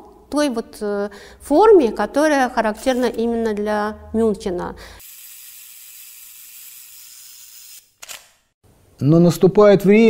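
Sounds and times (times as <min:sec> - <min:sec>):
camera click: 0:08.0 - 0:08.4.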